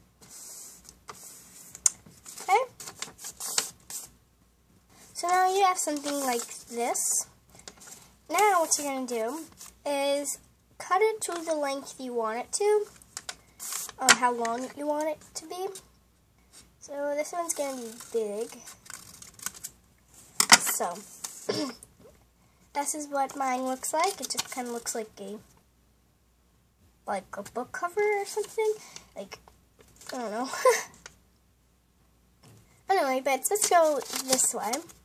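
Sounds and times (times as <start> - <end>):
paper rustling: 0.2 - 4.1, 4.9 - 9.8, 11.3 - 11.6, 12.8 - 14.8, 17.5 - 19.7, 24.0 - 24.9, 33.5 - 35.0
scissors snipping paper: 33.6 - 34.9.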